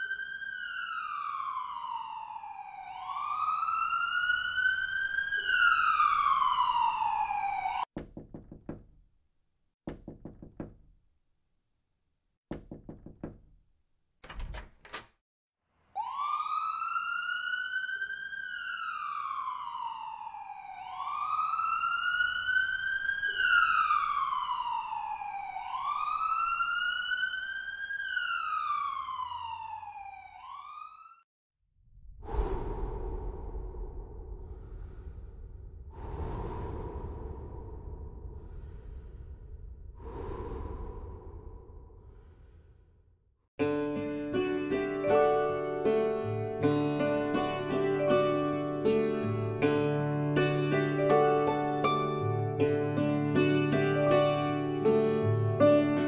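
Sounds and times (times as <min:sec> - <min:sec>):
emergency vehicle wail siren: 0:00.0 - 0:07.9, 0:16.0 - 0:31.2, 0:47.0 - 0:52.6
sharp knocks: 0:08.0 - 0:09.0, 0:09.9 - 0:11.0, 0:12.5 - 0:13.6.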